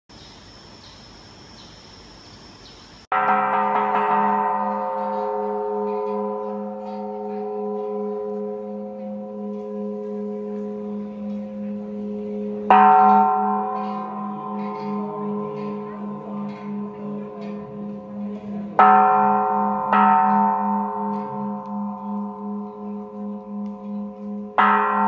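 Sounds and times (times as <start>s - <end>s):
large temple bell ringing: 3.1s - 25.0s.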